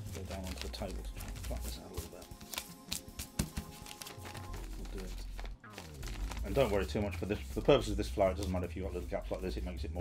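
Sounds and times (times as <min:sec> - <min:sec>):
paper being folded and creased: 0:00.0 - 0:10.0
paper crackling: 0:00.0 - 0:10.0
soft background music: 0:00.0 - 0:10.0.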